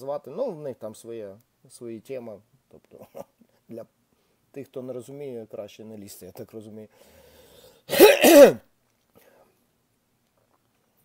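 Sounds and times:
man clearing his throat: 7.9s - 8.6s.

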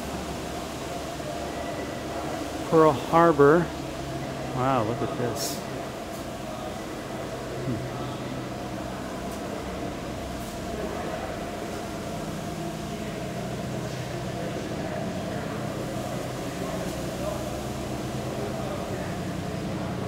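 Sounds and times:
low mechanical hum: 0.0s - 20.0s.

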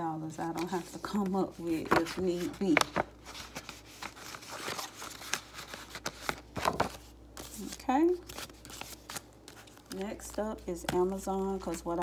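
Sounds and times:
paper rustling: 0.4s - 12.0s
plastic pockets crinkling: 0.4s - 12.0s.

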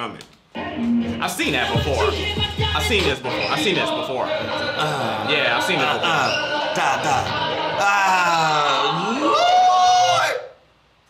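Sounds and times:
man vocalising ooh: 4.6s - 10.6s.

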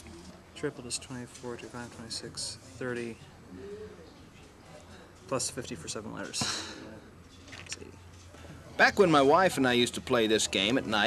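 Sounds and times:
soft low vocal murmur: 3.3s - 5.1s.

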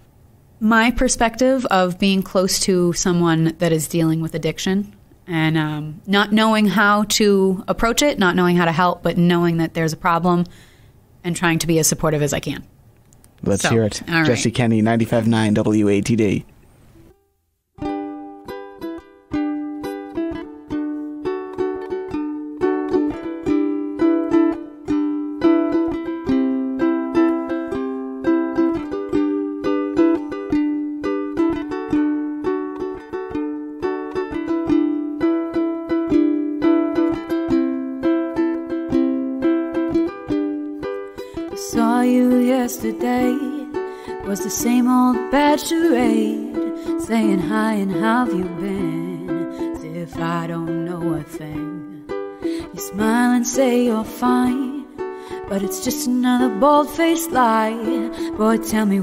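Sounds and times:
ukulele picking: 17.8s - 59.0s
woman singing: 41.3s - 59.0s.

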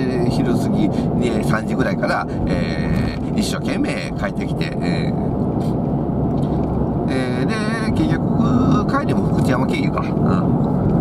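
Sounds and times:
car road and engine noise: 0.0s - 11.0s
man making wavering sounds: 4.0s - 5.2s, 7.1s - 8.9s.

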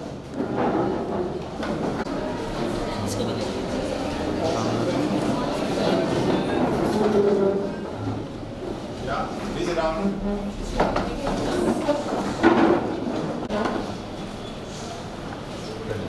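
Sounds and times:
jumble of voices: 2.0s - 16.0s
chairs and desks scraping: 3.4s - 15.9s
desks and chairs knocking and scraping: 10.7s - 13.9s.

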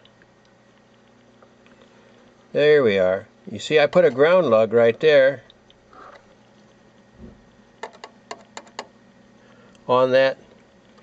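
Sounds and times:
soft low thump: 7.2s - 7.5s.

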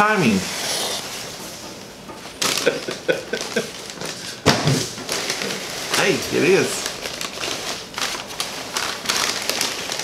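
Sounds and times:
paper bag crinkling: 2.3s - 10.0s.

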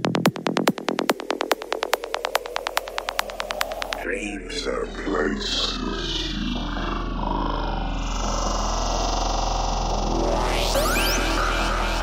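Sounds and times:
low electronic rumble: 0.0s - 12.0s.

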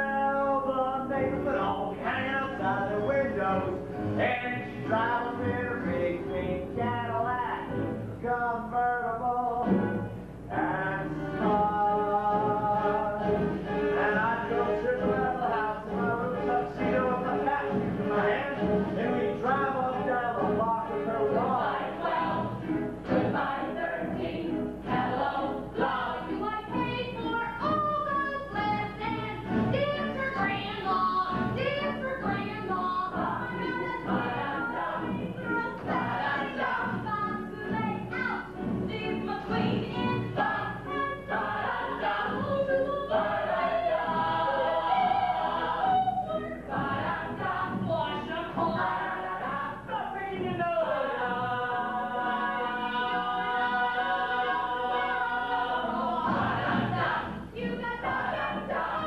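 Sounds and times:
ensemble singing show tune: 0.0s - 59.0s.

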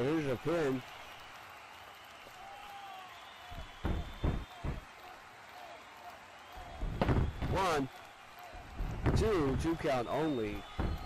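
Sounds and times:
arena crowd noise: 0.0s - 11.0s
faint whistles: 0.9s - 5.0s, 5.9s - 11.0s
quick heavy thumps: 3.6s - 4.9s, 6.8s - 7.6s, 8.8s - 9.6s, 10.7s - 11.0s.

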